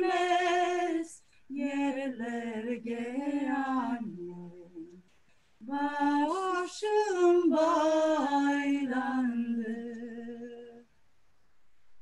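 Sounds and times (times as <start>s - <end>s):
women singing unaccompanied: 0.0s - 10.9s.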